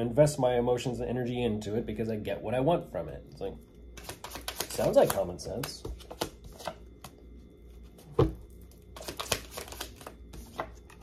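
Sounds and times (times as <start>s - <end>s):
cards shuffled by hand: 4.0s - 7.2s, 8.9s - 11.0s.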